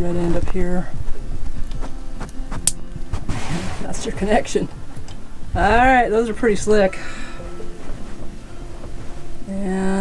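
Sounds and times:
wires rustling: 0.0 - 10.0.

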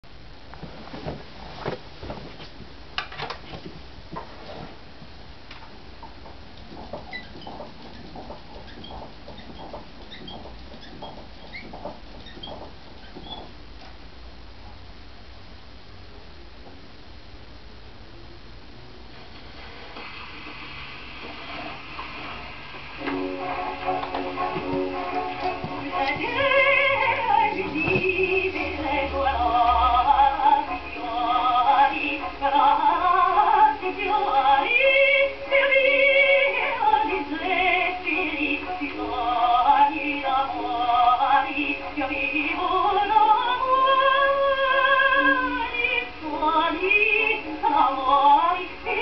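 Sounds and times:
record surface hiss and crackles: 0.0 - 49.0
contralto singing on gramophone: 19.5 - 49.0.

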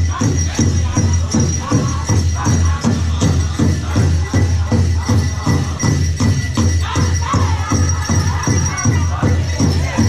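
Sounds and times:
big drum steady beat: 0.0 - 10.0
high singing voices: 0.0 - 10.0.

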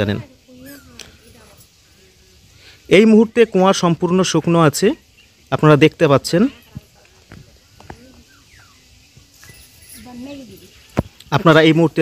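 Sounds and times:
faint distant voices: 0.0 - 12.0.

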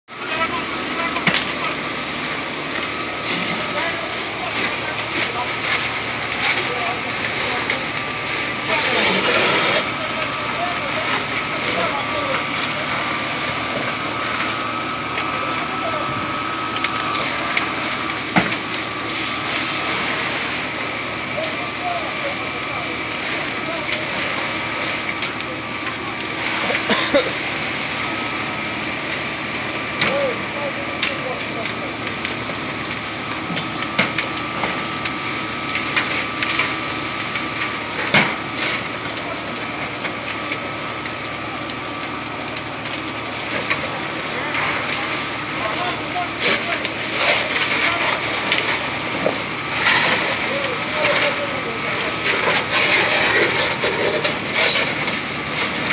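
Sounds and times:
fire cracking: 0.1 - 55.9
fire rushing: 0.1 - 55.9.

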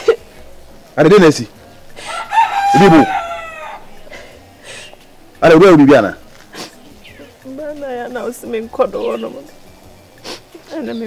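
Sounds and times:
rooster crowing: 2.0 - 4.0.

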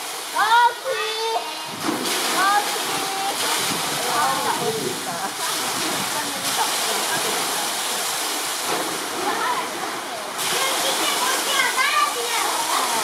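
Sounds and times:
running water rushing: 0.0 - 13.0.

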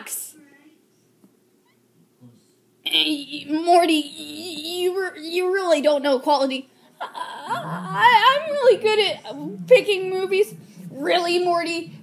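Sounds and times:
woman speaking in cartoon voice: 2.9 - 12.0.

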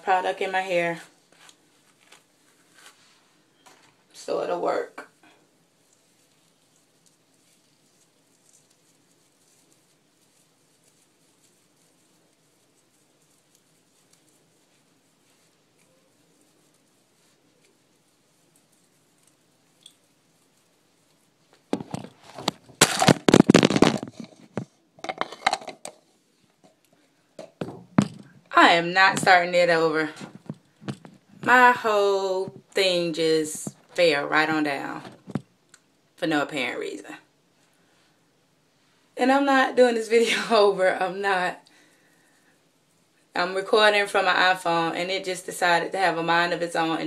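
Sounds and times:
handling noise on phone microphone: 0.0 - 35.6
brush rustling through hair: 0.1 - 24.7
phone falling with clatter: 21.8 - 25.9.

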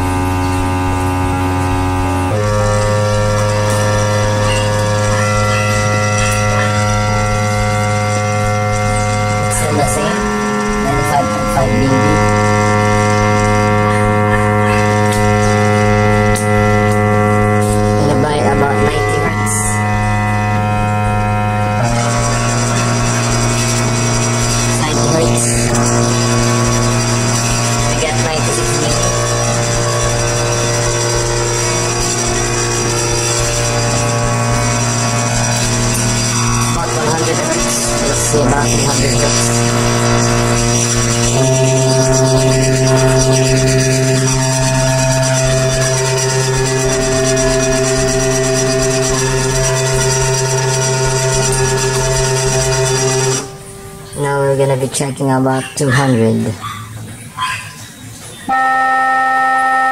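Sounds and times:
buzzy low sine test tone: 0.0 - 55.4, 58.5 - 59.9.

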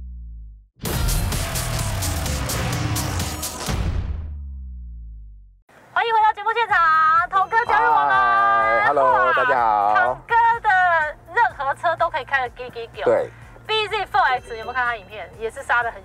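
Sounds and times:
two people talking: 6.0 - 16.0.

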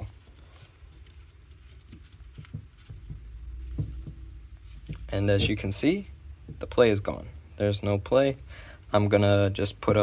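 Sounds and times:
metal part knocking on wooden bench: 2.4 - 4.3, 4.9 - 5.8.

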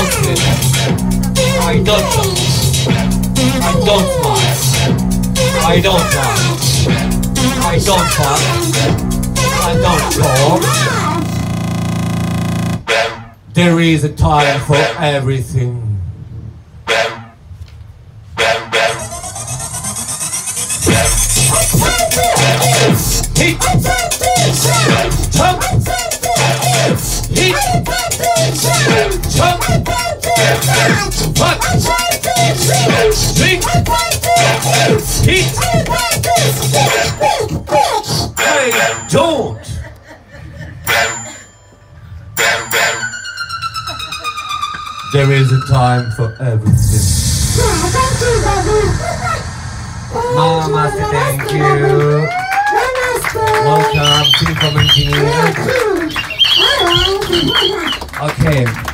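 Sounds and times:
music: 0.0 - 13.4, 18.4 - 39.2, 40.9 - 49.4, 51.3 - 58.2
harsh noise hits: 18.9 - 27.9, 46.6 - 52.0
rising electronic sweep: 46.7 - 52.0.

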